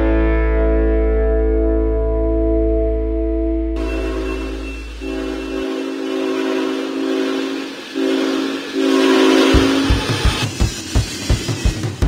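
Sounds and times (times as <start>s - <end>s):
locomotive air horn blasts: 3.8s - 10.2s
train rumble: 3.8s - 12.0s.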